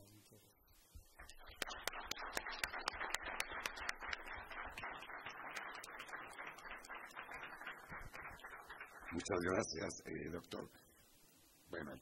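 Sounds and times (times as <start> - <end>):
audience applauding: 1.2 - 9.6.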